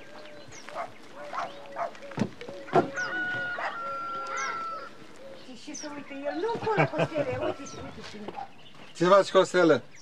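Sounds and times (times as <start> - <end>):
poultry clucking and squawking: 0.0 - 8.5.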